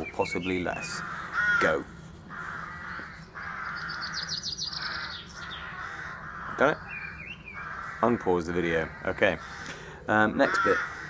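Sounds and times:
harsh bird calling: 0.0s - 11.0s
high bird chirps: 2.8s - 7.9s.

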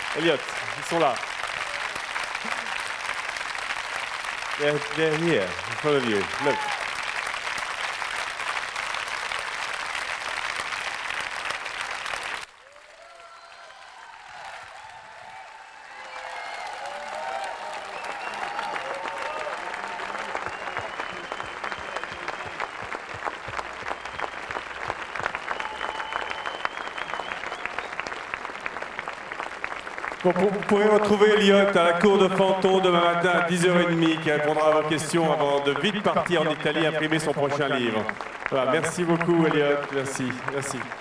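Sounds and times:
large audience applauding: 0.0s - 41.0s.

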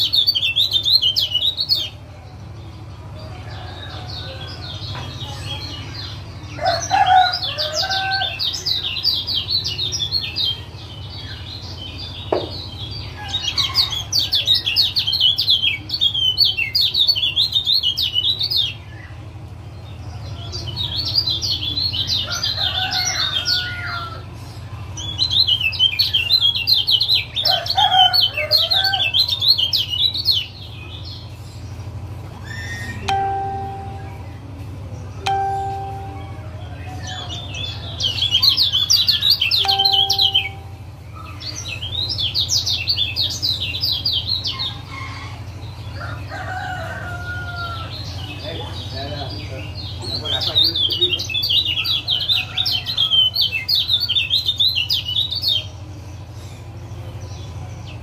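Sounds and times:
short steady lower notes: 33.1s - 34.3s, 35.2s - 36.8s, 39.6s - 41.0s.

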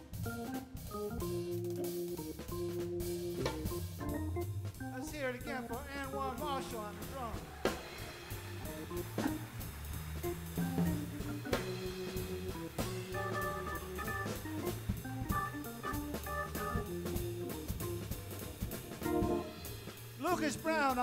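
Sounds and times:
bass line: 0.0s - 21.0s
drum kit and cymbals: 0.0s - 21.0s
organ chords: 0.0s - 21.0s.

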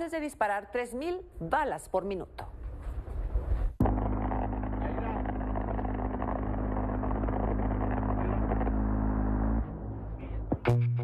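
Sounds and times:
minigun firing continuous burst: 3.8s - 9.6s.

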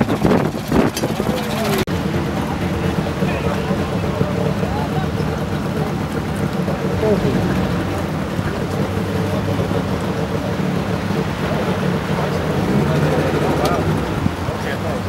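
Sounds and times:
crowd chattering: 0.0s - 15.0s
engine idling: 0.0s - 15.0s.

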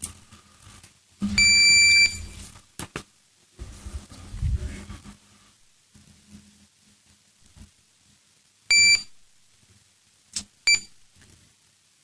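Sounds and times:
high electronic beep: 1.2s - 2.3s.

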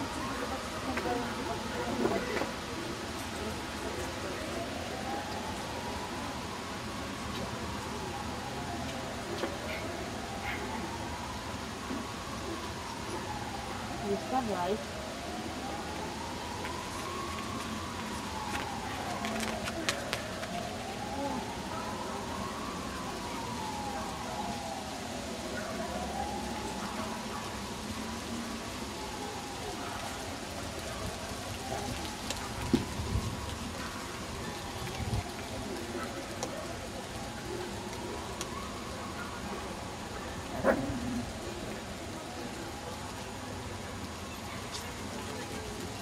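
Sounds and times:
outdoor background noise: 0.0s - 46.0s.

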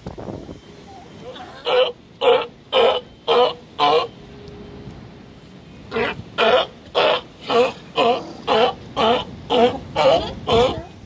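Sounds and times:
sea lion barking: 1.3s - 4.2s, 5.9s - 11.0s.

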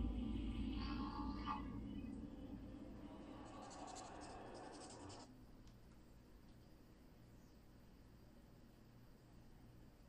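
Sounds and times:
trailer soundtrack through speakers: 0.0s - 5.3s.

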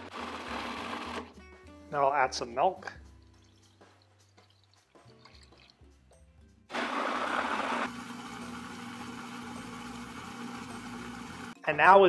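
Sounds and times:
food processor motor whirring: 0.0s - 1.3s, 6.7s - 11.6s.

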